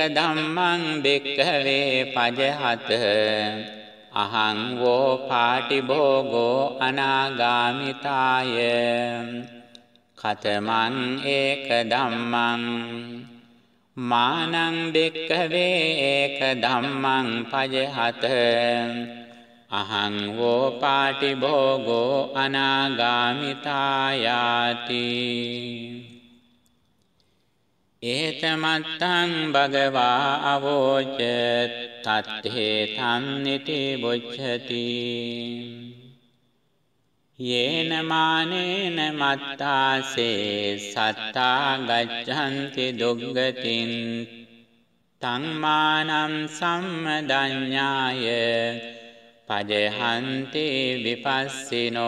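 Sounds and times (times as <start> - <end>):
person chanting: 0.0 - 26.6, 28.0 - 36.2, 37.4 - 52.0.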